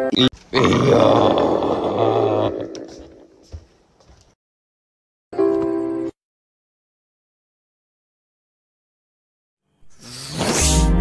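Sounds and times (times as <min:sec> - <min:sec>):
cartoon monster growl: 0:00.5 - 0:03.3
music: 0:05.4 - 0:06.2, 0:10.3 - 0:11.0.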